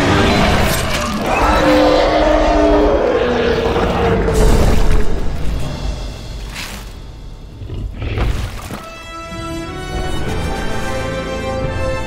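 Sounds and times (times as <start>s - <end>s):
dinosaur roars: 0.0s - 5.1s.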